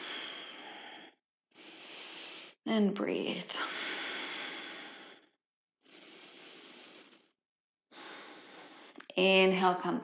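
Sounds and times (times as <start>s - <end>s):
woman breathing deeply: 0.0s - 2.6s, 3.6s - 9.0s.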